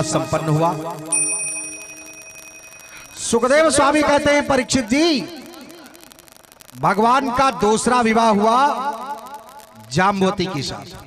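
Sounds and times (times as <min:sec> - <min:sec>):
bell ringing: 0:00.0 - 0:04.2.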